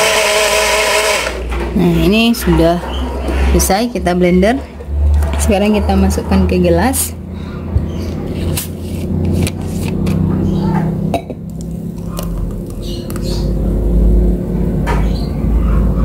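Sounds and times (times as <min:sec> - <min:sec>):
steady low drone: 0:02.9 - 0:16.0.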